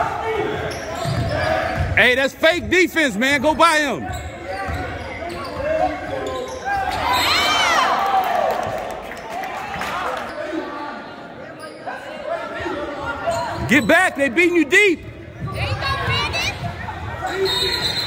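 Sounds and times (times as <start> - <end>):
general noise of play: 0.0 - 18.0.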